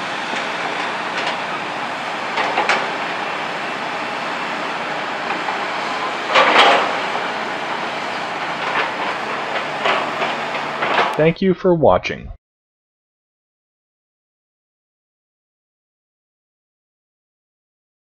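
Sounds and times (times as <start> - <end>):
train wheel and rail noise: 0.0 - 11.3
wheels clicking over rail joints: 0.3 - 11.2.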